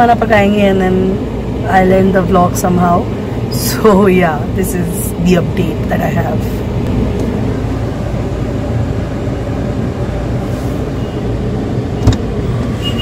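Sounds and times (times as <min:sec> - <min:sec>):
car engine rumbling: 0:00.0 - 0:13.0.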